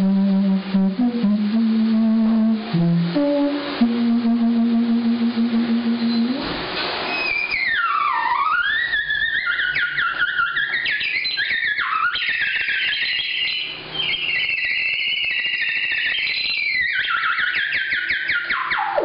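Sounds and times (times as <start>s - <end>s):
theremin swooping: 0.0s - 19.0s.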